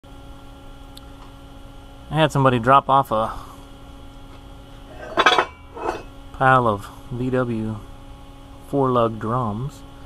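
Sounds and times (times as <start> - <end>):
metal brake drums clanking: 4.9 - 6.0.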